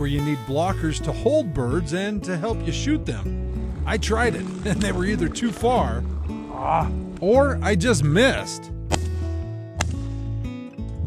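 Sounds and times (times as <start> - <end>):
strummed acoustic guitar music: 0.1 - 11.0.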